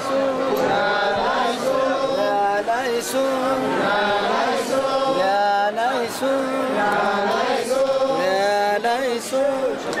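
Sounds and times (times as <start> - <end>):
group chanting a hymn: 0.0 - 9.9.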